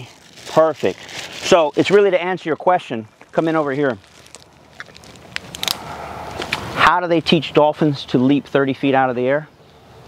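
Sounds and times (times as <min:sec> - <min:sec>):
dog crunching food: 0:04.0 - 0:05.8.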